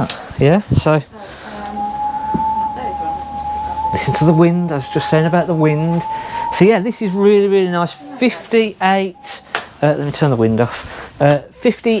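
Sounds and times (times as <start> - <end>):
wind whistling through a gap: 0.7 - 11.0.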